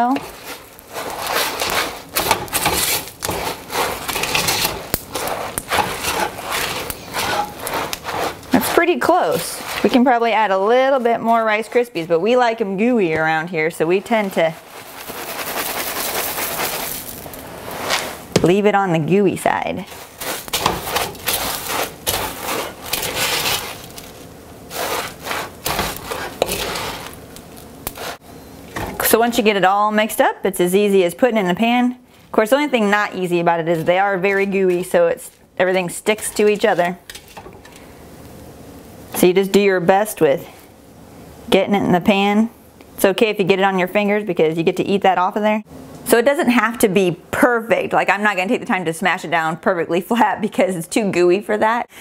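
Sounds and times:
cereal crunchy rustling: 0:00.0 - 0:12.3, 0:13.9 - 0:18.2, 0:19.8 - 0:28.2
utensil scraping a metal pan: 0:00.0 - 0:12.3, 0:19.8 - 0:24.1, 0:24.7 - 0:27.2.

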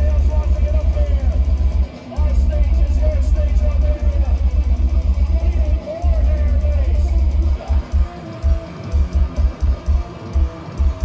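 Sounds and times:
distorted guitar: 0:00.0 - 0:11.0
harsh vocals: 0:00.0 - 0:11.0
rapid pounding kick drums: 0:00.0 - 0:11.0.

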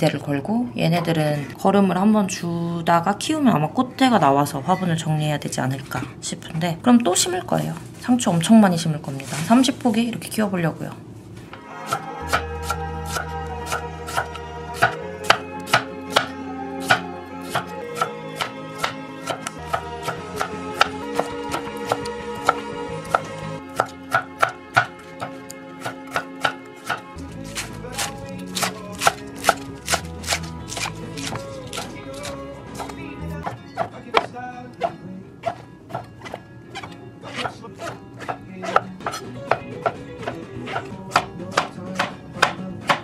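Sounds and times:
soft background music: 0:00.0 - 0:43.0
knife chopping on wooden board: 0:11.9 - 0:43.0.

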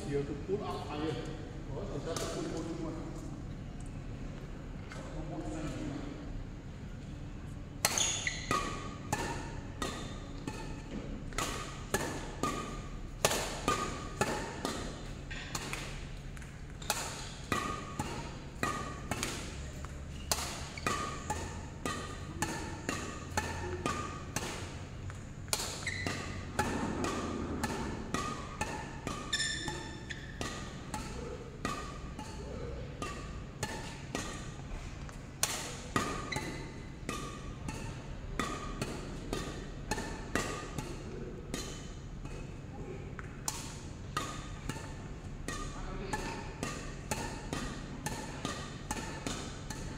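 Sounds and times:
low steady hum: 0:00.0 - 0:49.9
rackets hitting shuttlecock: 0:07.8 - 0:49.9.

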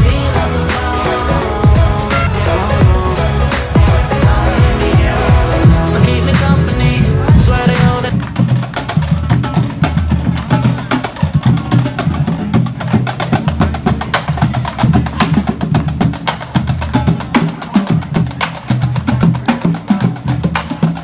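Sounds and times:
bass and tenor drums: 0:00.0 - 0:21.0.

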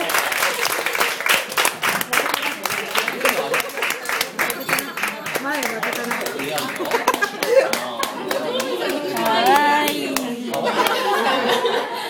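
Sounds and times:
audience hand clapping: 0:00.0 - 0:11.4
voices talking: 0:02.2 - 0:11.8.

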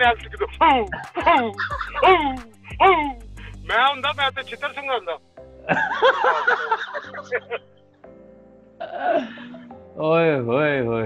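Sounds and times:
man cackling laughter: 0:00.4 - 0:03.2, 0:05.7 - 0:07.6.

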